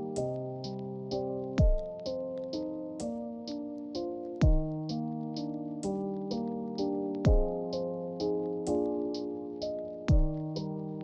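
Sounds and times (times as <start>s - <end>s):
keyboard chords: 0.0s - 11.0s
low kick drum: 1.6s - 1.9s, 4.4s - 4.8s, 7.3s - 7.6s, 10.1s - 10.4s.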